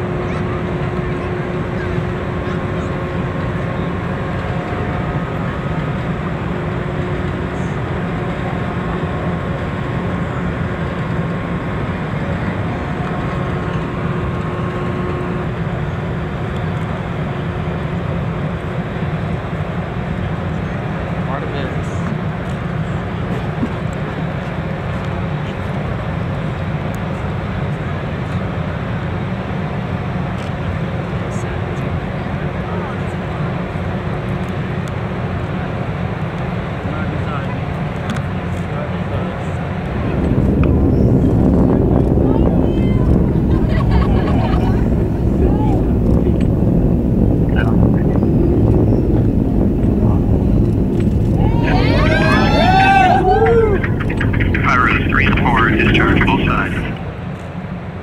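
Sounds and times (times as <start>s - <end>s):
low rumbling outdoor background: 0.0s - 58.0s
faint steady hums: 39.8s - 57.0s.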